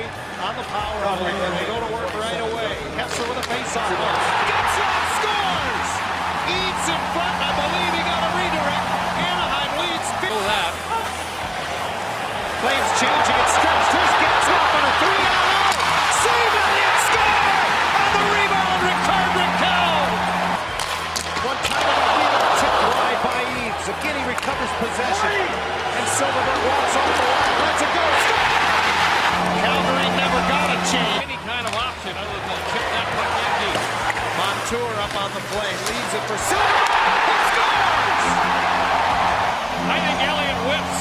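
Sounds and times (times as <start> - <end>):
voices: 0.0 - 20.6, 21.4 - 41.0
crowd cheering: 2.7 - 41.0
hockey sticks and puck clacking: 3.0 - 11.4, 12.6 - 25.2, 26.4 - 41.0.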